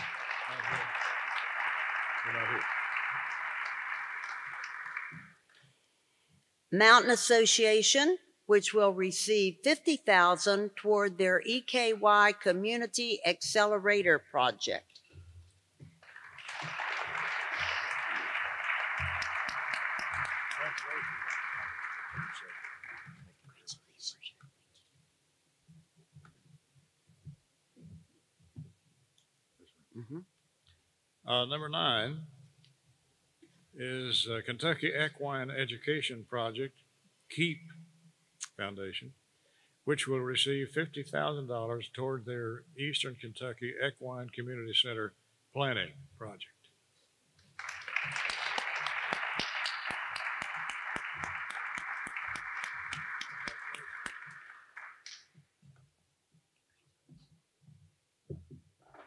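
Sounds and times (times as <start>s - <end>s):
audience applauding: 0.0s - 5.4s, 16.0s - 23.7s, 47.6s - 55.3s.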